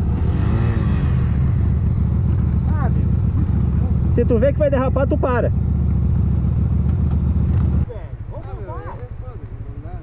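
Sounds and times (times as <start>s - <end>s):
motorcycle engine running at low revs: 0.0s - 10.0s.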